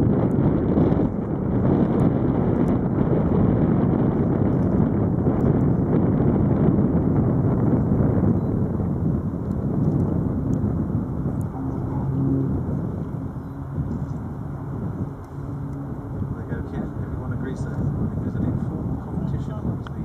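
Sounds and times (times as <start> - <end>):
aircraft radial engines running: 0.0 - 20.0
wind noise on microphone: 0.0 - 20.0.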